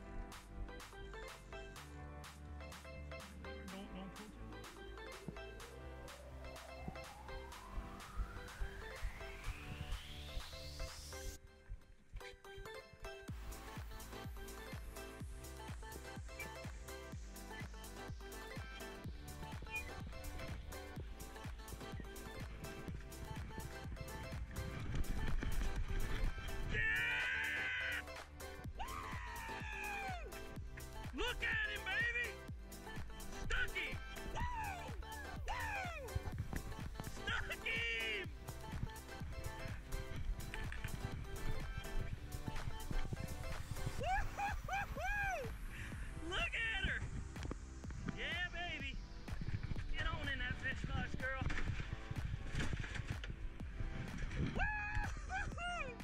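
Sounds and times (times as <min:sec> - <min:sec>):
music with steady beat: 0:00.0 - 0:11.4, 0:12.6 - 0:56.0.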